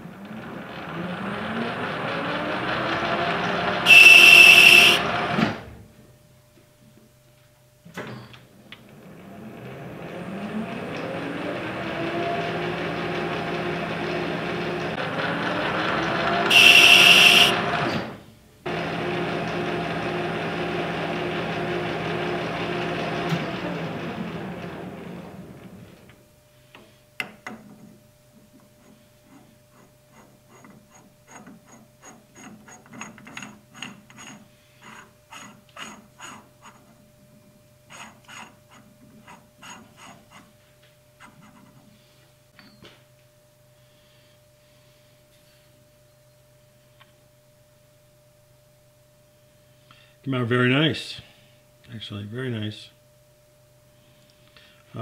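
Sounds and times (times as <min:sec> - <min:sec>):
metal lathe running: 0:00.2 - 0:05.5, 0:09.6 - 0:17.9, 0:18.7 - 0:25.9
high-pitched screech: 0:03.8 - 0:05.2, 0:16.4 - 0:17.6.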